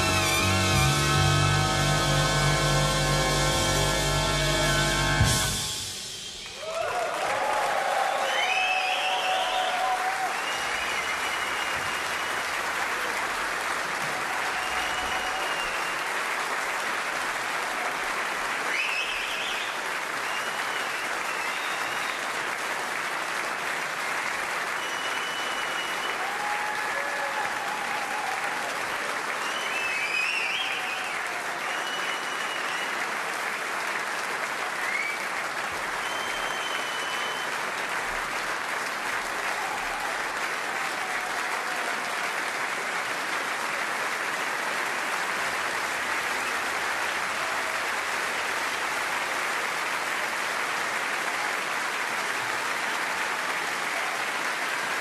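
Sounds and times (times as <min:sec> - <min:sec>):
audience applause: 0:00.0 - 0:55.0
high whistles: 0:04.7 - 0:07.3, 0:08.1 - 0:12.5, 0:14.6 - 0:16.1, 0:18.7 - 0:22.3, 0:24.7 - 0:26.4, 0:29.4 - 0:33.0, 0:34.8 - 0:35.3, 0:35.9 - 0:37.6.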